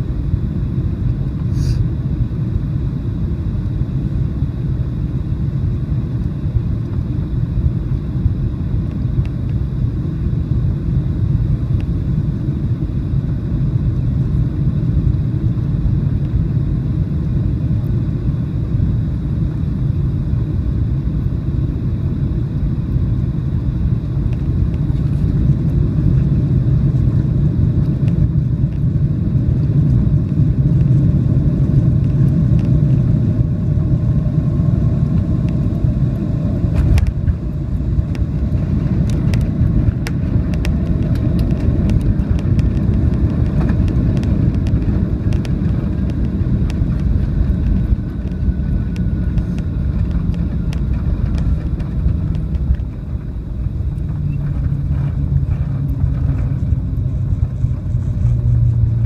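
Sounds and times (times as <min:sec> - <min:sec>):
aircraft engine and airflow rumble: 0:00.0 - 0:59.0.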